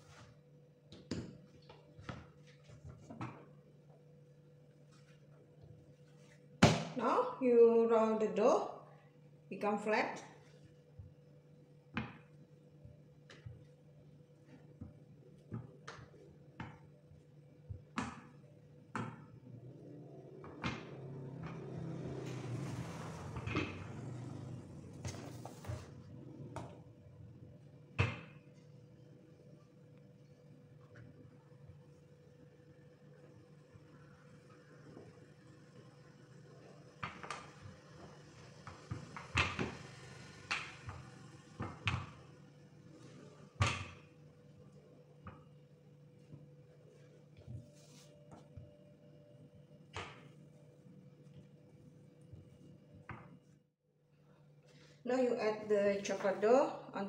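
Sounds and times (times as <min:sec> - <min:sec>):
rolling pin rubbing over dough: 0:25.1 - 0:26.2.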